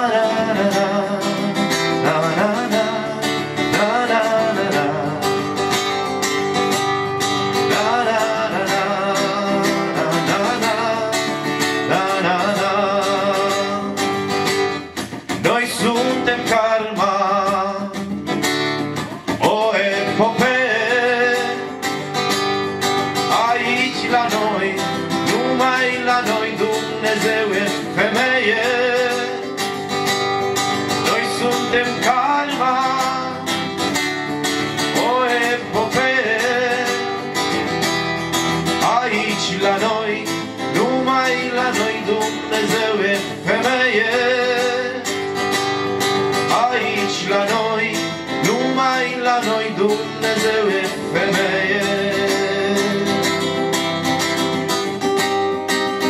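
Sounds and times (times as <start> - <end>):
man singing: 0.0 - 6.2, 7.4 - 29.9, 30.8 - 53.7
acoustic guitar strumming: 0.0 - 56.0.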